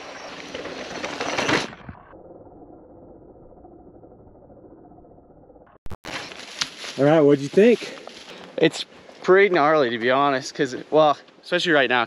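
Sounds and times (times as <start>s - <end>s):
bike tyres rolling over dirt: 0.0s - 2.0s, 6.1s - 8.8s.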